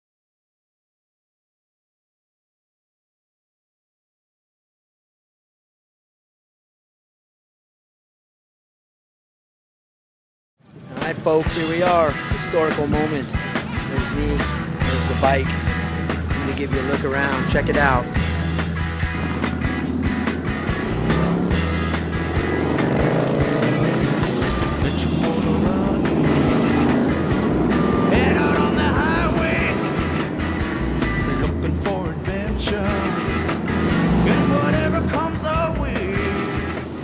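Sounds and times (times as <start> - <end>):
motorcycle engines running: 10.6 - 37.0
background music: 10.8 - 37.0.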